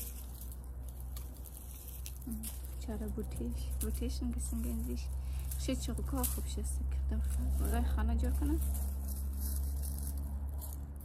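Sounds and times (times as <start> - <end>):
dry vine stems rustling: 0.0 - 11.0
low rumble: 0.0 - 11.0
secateurs cutting: 0.0 - 11.0.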